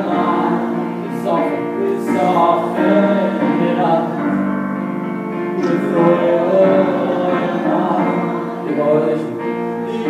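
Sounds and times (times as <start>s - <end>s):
man singing: 0.0s - 4.5s, 5.6s - 10.0s
grand piano accompaniment: 0.0s - 10.0s.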